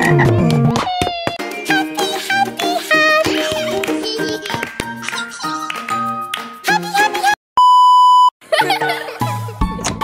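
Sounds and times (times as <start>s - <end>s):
music with voice: 0.0s - 7.4s.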